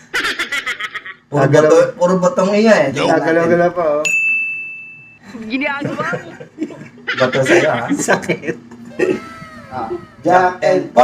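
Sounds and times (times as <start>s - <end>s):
men laughing: 0.0s - 1.3s, 5.7s - 10.6s
men talking: 1.3s - 4.1s, 5.8s - 11.0s
bright bell-like ding: 4.0s - 5.2s.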